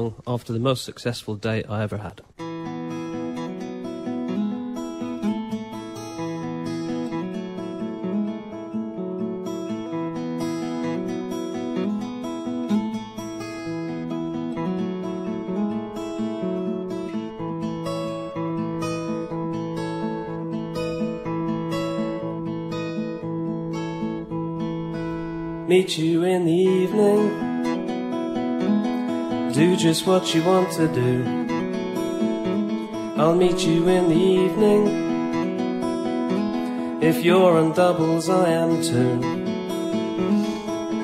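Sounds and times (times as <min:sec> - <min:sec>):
acoustic guitar playing: 0:00.0 - 0:41.0.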